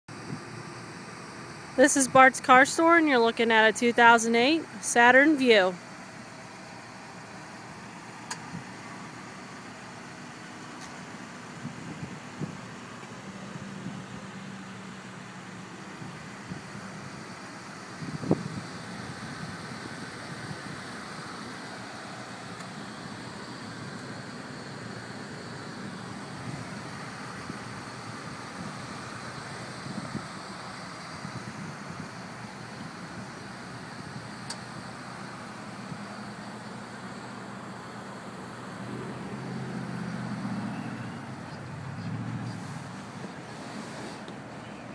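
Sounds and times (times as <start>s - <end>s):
traffic hum: 0.1s - 44.9s.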